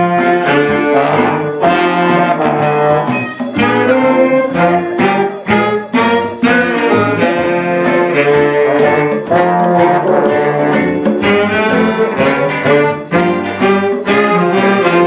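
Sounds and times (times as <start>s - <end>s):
big band horns playing jazz: 0.0s - 15.0s.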